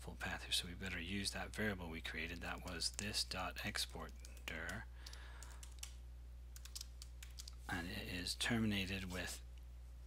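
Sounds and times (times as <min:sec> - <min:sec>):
steady low hum: 0:00.0 - 0:10.0
computer keyboard keystrokes: 0:03.9 - 0:06.0, 0:06.6 - 0:07.6.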